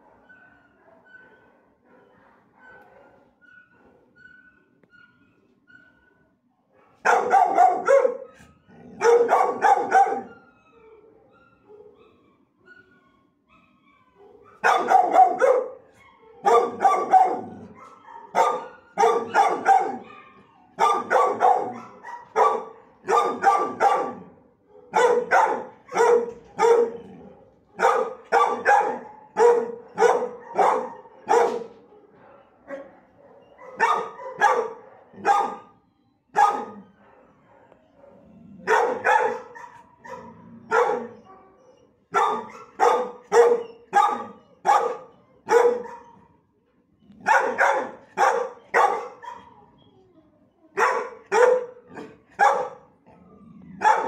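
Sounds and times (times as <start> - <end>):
dog barking sharply: 7.0 - 8.2, 9.0 - 10.3, 14.6 - 15.8, 16.5 - 17.5, 18.3 - 20.1, 20.8 - 24.2, 24.9 - 27.0, 27.8 - 31.8, 42.2 - 46.0, 47.3 - 49.2, 50.8 - 52.8.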